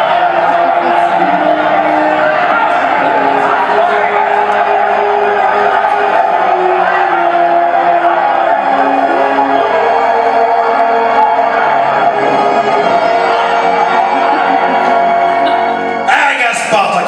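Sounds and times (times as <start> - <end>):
crowd of men shouting: 0.0 - 16.1
orchestral music over loudspeakers: 0.0 - 17.0.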